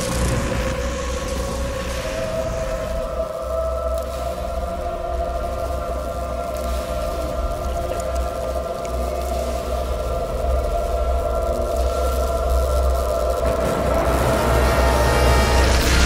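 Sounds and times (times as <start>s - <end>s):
deep rumble: 0.0s - 16.0s
long held drone tones: 0.0s - 16.0s.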